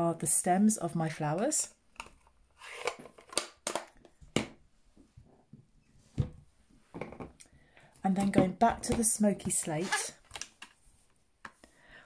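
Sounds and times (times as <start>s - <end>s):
plastic case clicks and rustles: 2.0s - 4.1s.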